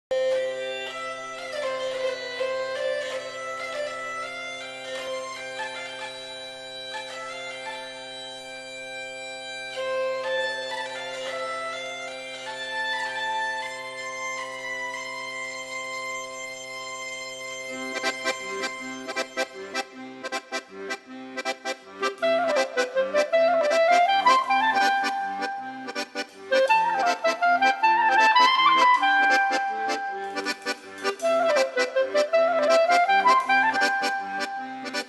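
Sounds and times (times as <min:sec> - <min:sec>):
bagpipe melody with drones: 0:00.1 - 0:35.0.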